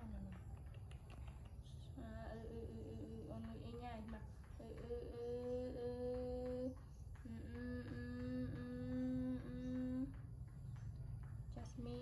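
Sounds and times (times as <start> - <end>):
woman humming: 7.3 - 10.1.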